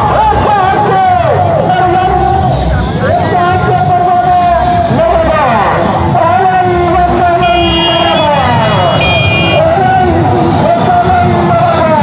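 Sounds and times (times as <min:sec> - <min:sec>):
street crowd: 0:00.0 - 0:12.0
high horn tooting: 0:07.4 - 0:09.9.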